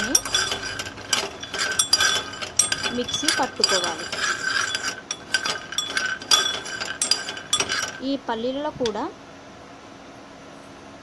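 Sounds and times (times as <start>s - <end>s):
peanuts rattling in a pan: 0.0s - 8.2s.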